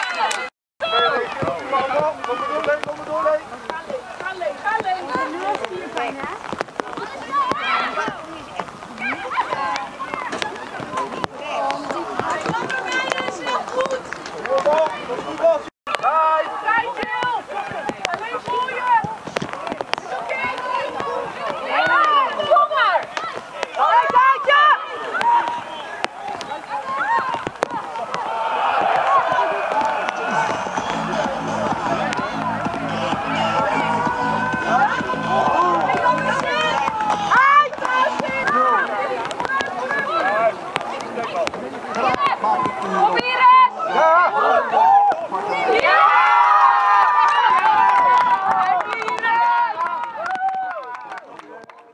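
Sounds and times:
high voices shouting: 0:20.0 - 0:50.9.

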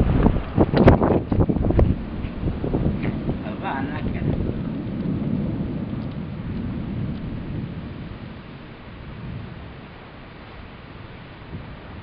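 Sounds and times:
rolling thunder: 0:00.0 - 0:12.0.

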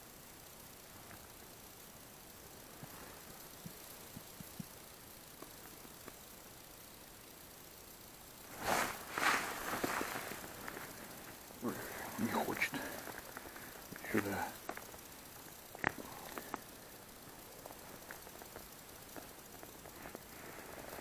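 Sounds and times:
faint ticks: 0:00.0 - 0:21.0
jacket rustling: 0:08.5 - 0:11.2.

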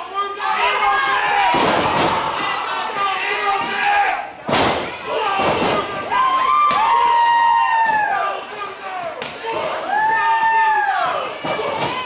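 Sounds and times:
audience shouting: 0:00.0 - 0:04.3
wrestling strikes smacking: 0:01.5 - 0:02.4, 0:04.4 - 0:06.1.

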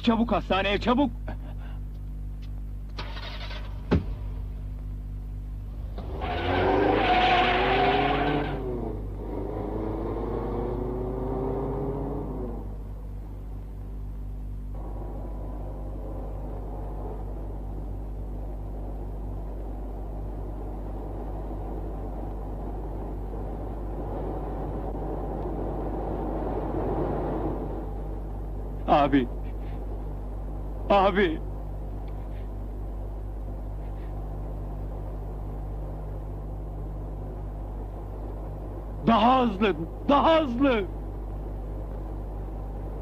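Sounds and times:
road noise: 0:00.0 - 0:43.0
car engine revving: 0:05.8 - 0:13.3.

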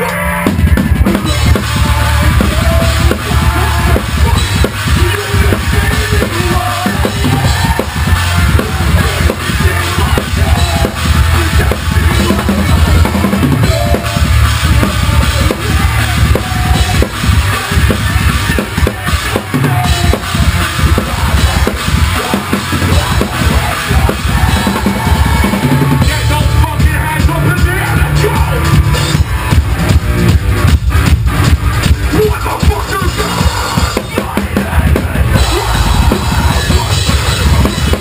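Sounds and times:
rapid kick drum strokes: 0:00.0 - 0:38.0.

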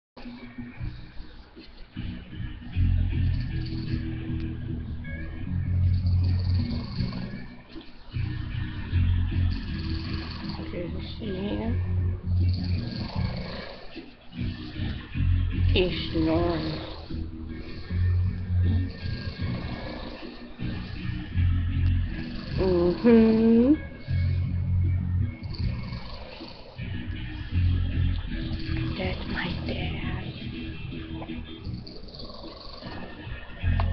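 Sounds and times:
man snoring: 0:03.2 - 0:04.4, 0:05.2 - 0:33.9.

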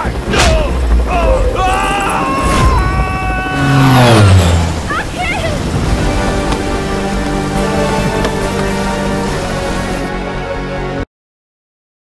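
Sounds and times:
aircraft engine falling in pitch: 0:00.0 - 0:10.0.

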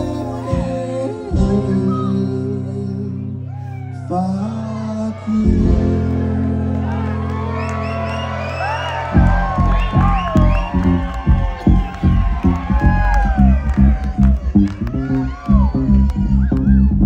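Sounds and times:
live concert music: 0:00.0 - 0:17.0
crowd cheering and whooping: 0:03.5 - 0:17.0.

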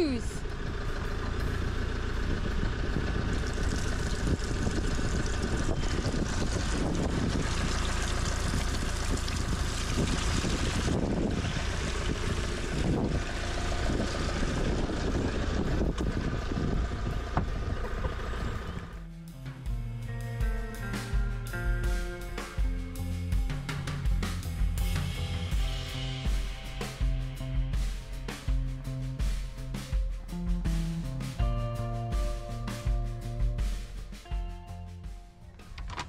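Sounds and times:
low rumble: 0:00.0 - 0:19.1.

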